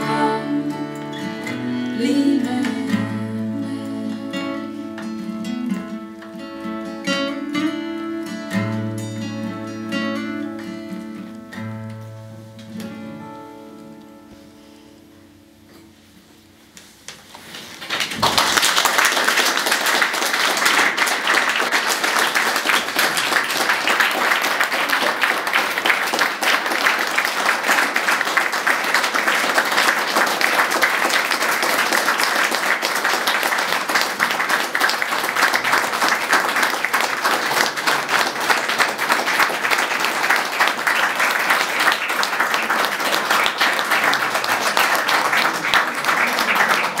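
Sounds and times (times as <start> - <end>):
audience applauding: 17.4 - 47.0.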